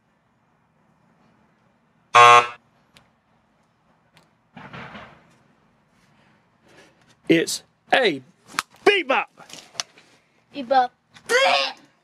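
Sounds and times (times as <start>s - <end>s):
electric buzzer: 2.2s - 2.6s.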